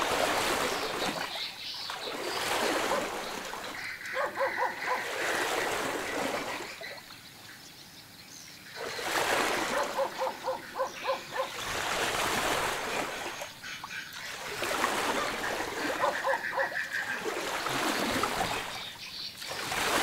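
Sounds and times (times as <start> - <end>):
water splashing against river bank: 0.0 - 7.1, 8.8 - 20.0
high yapping animal calls: 2.3 - 5.2, 9.2 - 11.6, 15.6 - 17.2.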